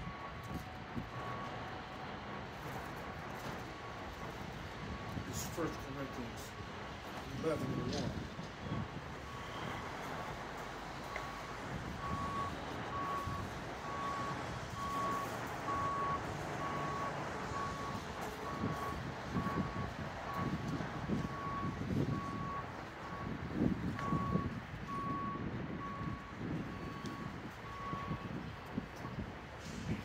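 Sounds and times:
reversing alarm beeping: 0.0 - 6.6, 7.4 - 28.4
outdoor noise: 0.0 - 30.0
gusty low rumbling: 6.6 - 14.9, 15.6 - 30.0.

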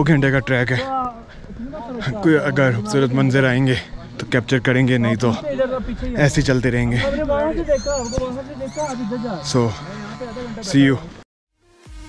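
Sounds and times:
man talking: 0.0 - 11.2
horse whinnying: 7.7 - 10.8.

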